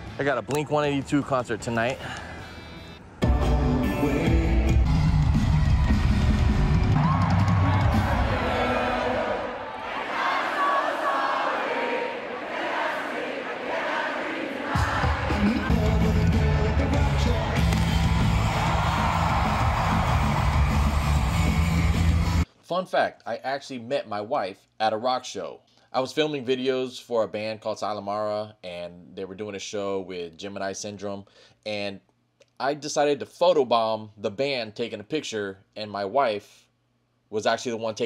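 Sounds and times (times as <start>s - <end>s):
crowd shouting and singing: 3.3s - 22.4s
crowd cheering: 4.9s - 22.4s.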